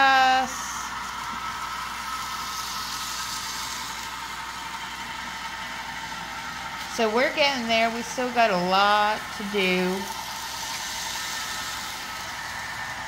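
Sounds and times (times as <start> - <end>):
mechanical whir: 0.0 - 13.0.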